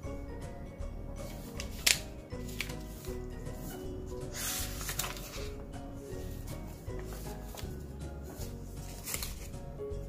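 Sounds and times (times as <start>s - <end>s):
paper pages turning: 1.2s - 5.6s, 6.2s - 9.6s
papery rubbing swish: 1.2s - 9.6s.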